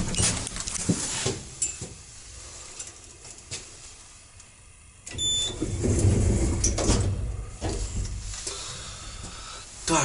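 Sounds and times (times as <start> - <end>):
lift doors rumbling shut: 5.1 - 8.3.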